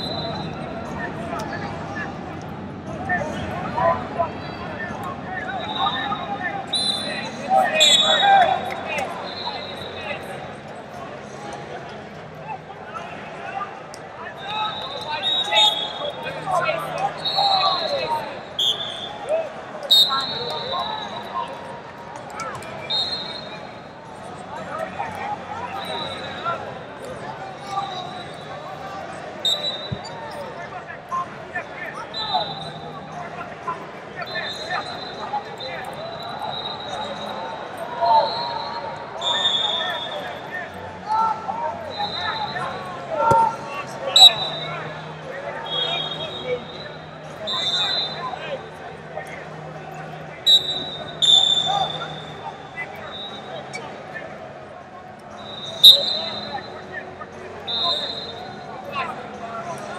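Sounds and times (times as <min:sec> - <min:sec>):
background chatter of voices: 0:00.0 - 0:59.9.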